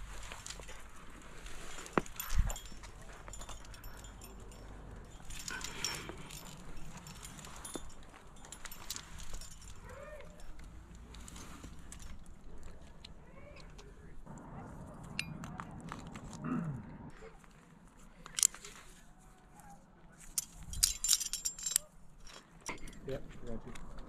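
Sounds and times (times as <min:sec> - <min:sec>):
carabiners jangling: 0:00.0 - 0:14.2, 0:18.2 - 0:18.8, 0:20.2 - 0:24.0
carabiner clipping click: 0:18.2 - 0:18.7, 0:20.3 - 0:23.0.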